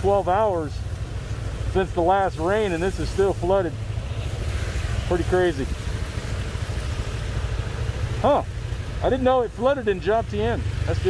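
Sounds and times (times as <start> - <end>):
faint hiss: 0.0 - 10.0
low traffic rumble: 0.0 - 11.0
vehicles driving through water: 0.0 - 11.0.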